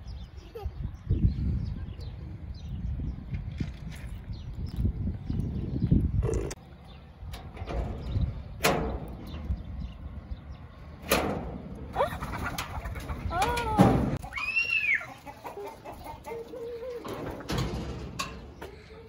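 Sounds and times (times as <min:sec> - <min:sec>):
chickens calling: 0:08.0 - 0:19.0.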